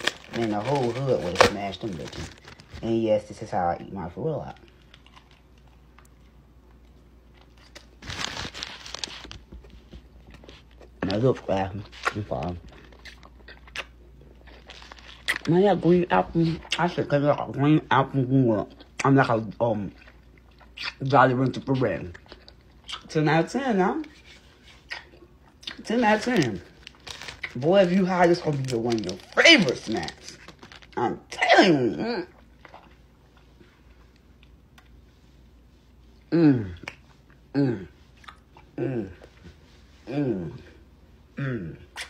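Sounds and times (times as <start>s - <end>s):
plastic wrapper crinkling and tearing: 0.0s - 3.5s, 4.4s - 6.2s, 7.3s - 16.0s, 25.7s - 31.0s
person speaking: 0.0s - 4.7s, 27.5s - 32.4s, 40.0s - 40.8s
person chewing: 11.7s - 15.6s, 18.7s - 21.1s, 21.9s - 23.1s, 24.1s - 27.6s, 32.2s - 35.0s, 36.2s - 39.5s.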